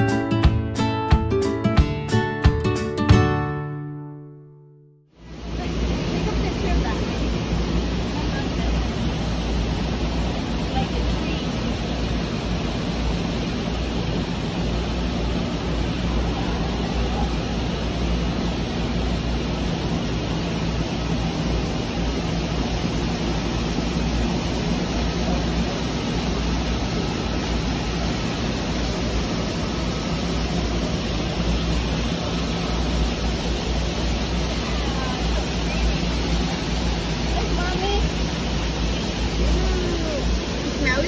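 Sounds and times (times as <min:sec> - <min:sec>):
steady rushing noise: 0:05.2 - 0:41.0.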